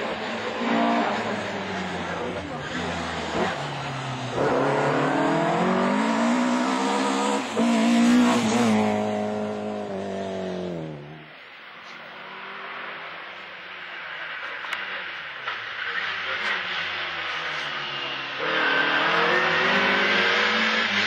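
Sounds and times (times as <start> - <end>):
car engine revving: 0.0 - 11.4, 14.7 - 21.0.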